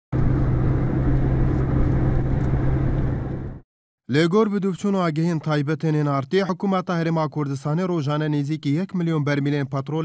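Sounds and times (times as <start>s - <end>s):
car road and engine noise: 0.1s - 3.6s
low hum: 0.1s - 3.6s.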